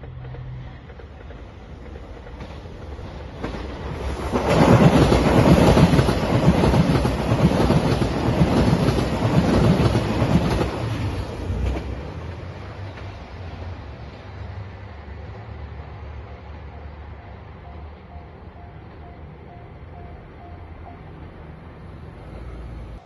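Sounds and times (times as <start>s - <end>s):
diesel train passing at speed: 0.0s - 23.0s.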